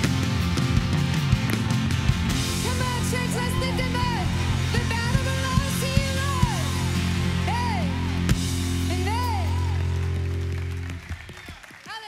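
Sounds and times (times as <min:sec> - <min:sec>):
rock band playing: 0:00.0 - 0:11.2.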